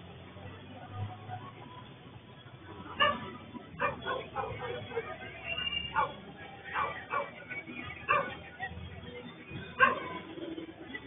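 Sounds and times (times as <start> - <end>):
dog barking: 3.0 - 5.1, 5.9 - 7.4, 8.1 - 8.4, 9.8 - 10.2.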